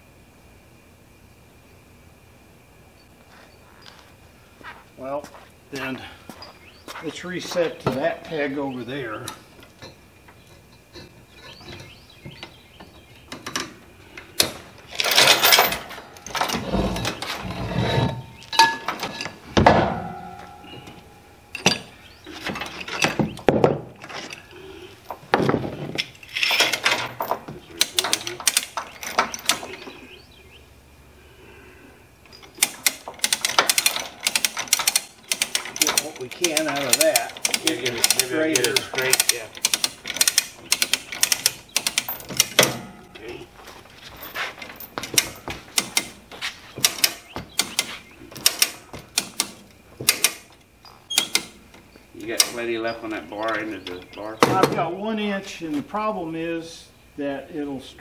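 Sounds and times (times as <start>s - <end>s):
chain clanking: 14.4s - 23.4s, 26.0s - 30.0s, 32.3s - 46.1s
metal knocks: 14.4s - 24.2s, 32.6s - 43.4s
ratchet pawl clicks: 32.6s - 42.5s.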